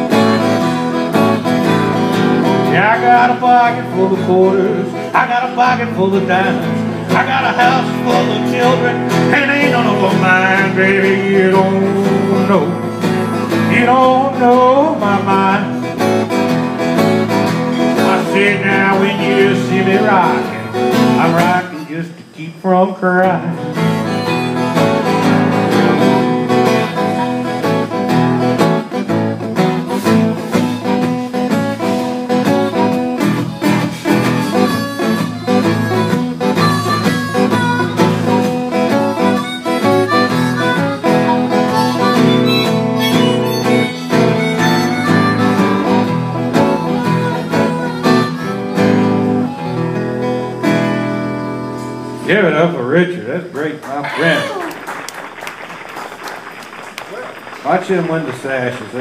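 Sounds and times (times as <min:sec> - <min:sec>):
harmonica playing lead: 0:00.0 - 0:22.0, 0:23.6 - 0:52.5, 0:54.0 - 0:54.7
acoustic guitar strumming: 0:00.0 - 0:55.4.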